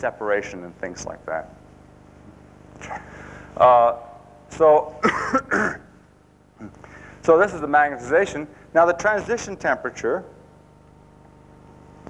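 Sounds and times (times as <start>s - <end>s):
man coughing: 2.8s - 3.2s, 5.0s - 5.9s.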